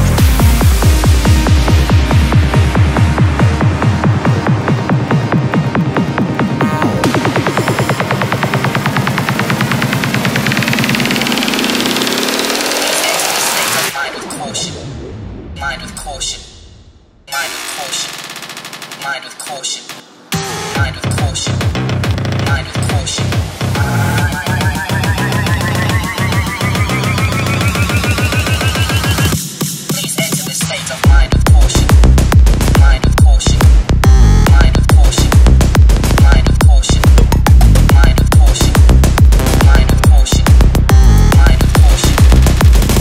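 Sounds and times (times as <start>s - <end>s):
electronic bass: 0.0s - 16.1s, 20.3s - 29.4s, 31.0s - 43.0s
rising synth tone: 6.6s - 13.4s, 23.6s - 29.4s
sweep rising in pitch: 23.7s - 29.4s
fast drum roll: 34.5s - 43.0s.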